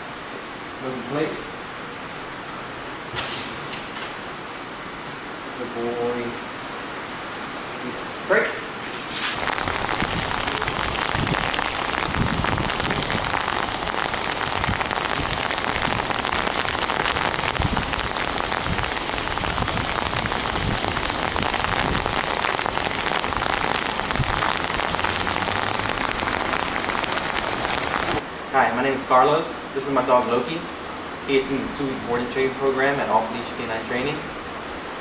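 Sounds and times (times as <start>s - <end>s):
rain falling on pavement: 9.1s - 28.3s.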